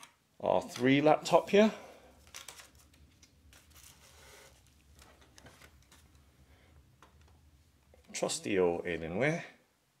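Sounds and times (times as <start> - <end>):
rustle of paper and plastic: 1.4 - 6.2.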